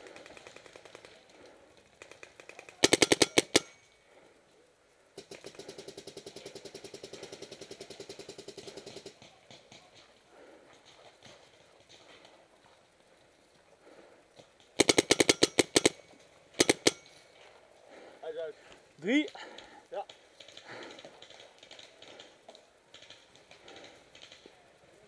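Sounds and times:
loud close paintball marker burst: 2.1 - 3.8, 14.8 - 16.0, 16.6 - 17.1
paintball markers firing: 2.1 - 3.8, 14.8 - 17.2
faint paintball marker firing: 16.6 - 17.2.

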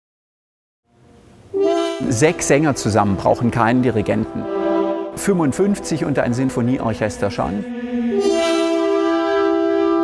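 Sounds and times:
choir and orchestra chord: 1.6 - 10.0.

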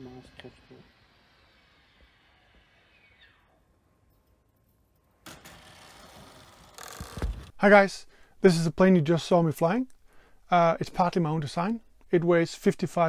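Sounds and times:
small motor whine spinning down: 0.0 - 3.7, 5.3 - 7.5
faint steady hiss: 7.5 - 13.0.

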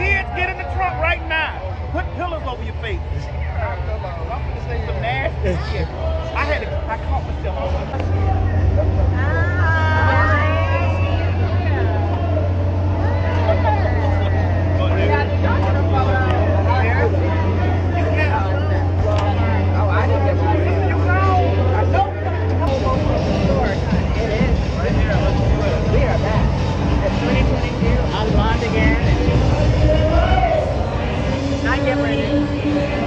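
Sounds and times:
engine running with low hum: 0.0 - 33.0
people talking at once: 0.0 - 33.0.

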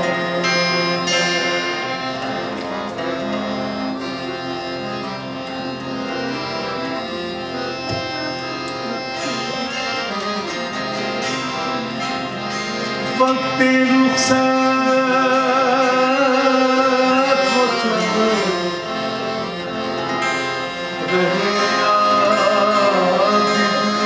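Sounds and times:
harmonium reed notes: 0.0 - 24.0.

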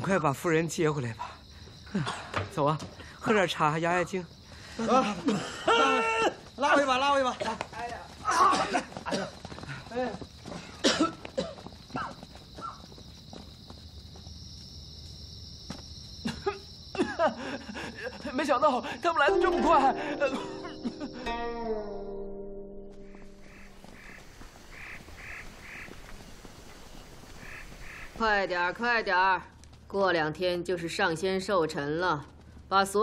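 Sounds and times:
faint outdoor background: 0.0 - 33.0
men crying out: 4.9 - 6.4
held music note: 19.3 - 24.0
scuffling footsteps: 22.9 - 28.2
ducks quacking: 23.0 - 26.0, 27.4 - 28.2.

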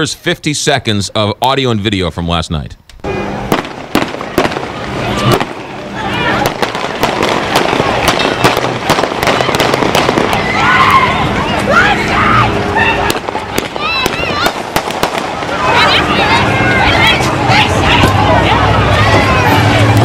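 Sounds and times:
gunshots: 3.5 - 10.5, 13.0 - 16.0
people shouting and screaming: 4.6 - 6.8, 7.6 - 20.0.

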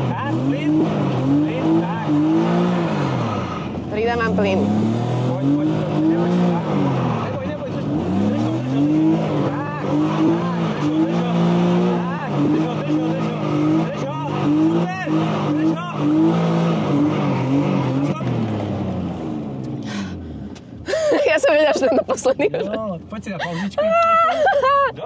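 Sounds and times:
car engine revving: 0.0 - 25.0.

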